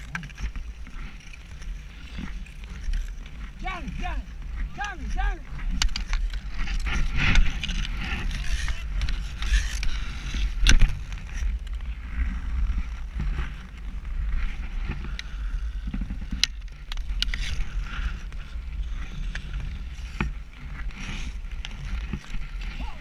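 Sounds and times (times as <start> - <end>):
skate blades scraping on ice: 0.0 - 23.0
wind rumble on microphone: 0.0 - 23.0.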